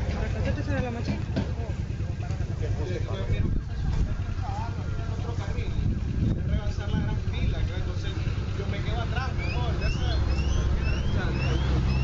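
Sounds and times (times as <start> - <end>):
people talking: 0.0 - 12.0
vehicle engine running: 0.0 - 12.0.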